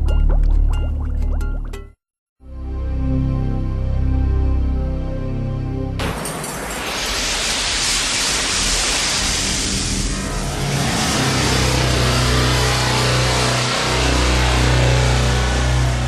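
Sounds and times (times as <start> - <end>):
deep bass drone: 9.4 - 16.0.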